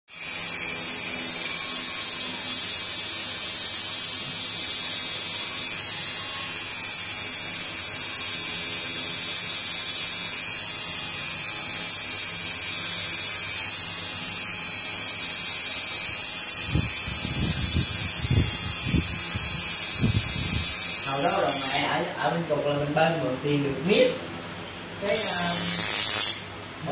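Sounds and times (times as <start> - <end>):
tattoo machine buzzing: 0.1 - 22.0, 25.0 - 26.6.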